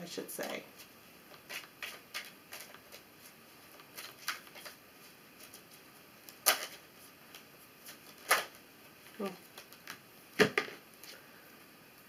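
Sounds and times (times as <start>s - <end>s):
cards shuffling: 0.4s - 8.6s.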